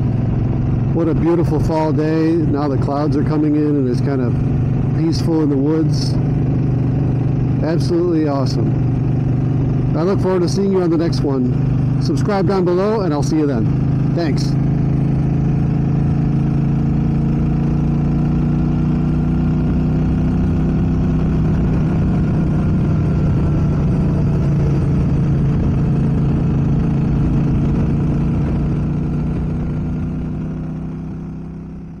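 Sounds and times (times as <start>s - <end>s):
motorcycle engine cruising: 0.0s - 32.0s.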